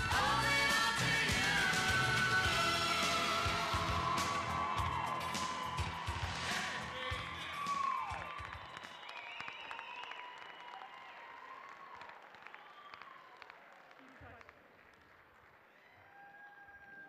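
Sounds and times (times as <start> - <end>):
dance music with beat: 0.0 - 8.4
audience applause: 2.8 - 17.0.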